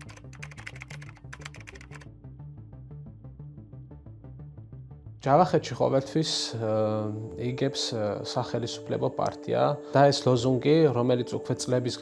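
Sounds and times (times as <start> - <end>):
keyboard key clicks: 0.0 - 2.0
background music with bass: 0.0 - 12.0.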